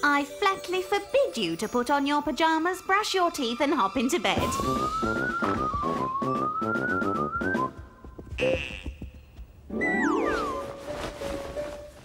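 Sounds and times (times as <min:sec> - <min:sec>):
musical burst with whistle glides: 0:04.4 - 0:07.8.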